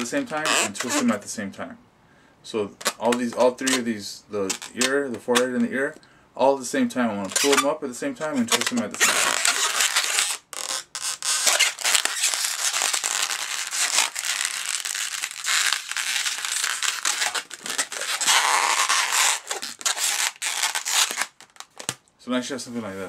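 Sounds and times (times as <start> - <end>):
balloon rubbing and squeaking: 0.0 - 1.2, 2.8 - 5.6, 7.2 - 22.0.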